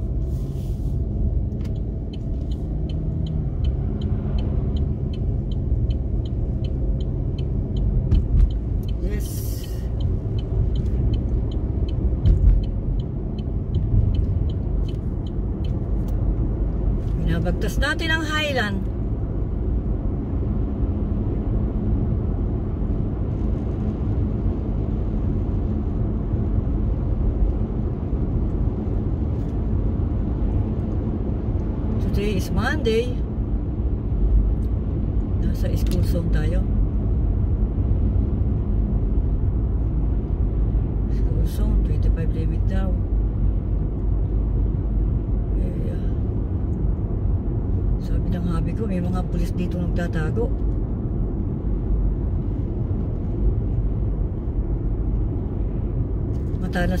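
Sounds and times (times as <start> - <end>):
engine and tyre rumble: 0.0 - 57.0
light regular ticking: 1.4 - 17.0.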